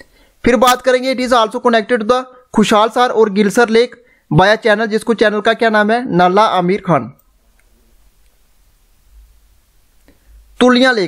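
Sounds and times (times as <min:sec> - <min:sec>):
man's voice: 0:00.4 - 0:07.2, 0:10.6 - 0:11.0
low steady hum: 0:07.2 - 0:10.6.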